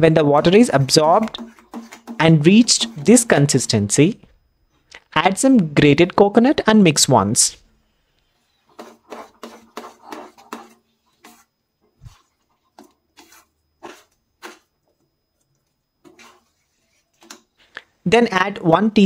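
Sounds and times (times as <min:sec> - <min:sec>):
spatula scraping a pan: 0:00.5 - 0:03.5, 0:08.3 - 0:15.0, 0:16.0 - 0:17.6.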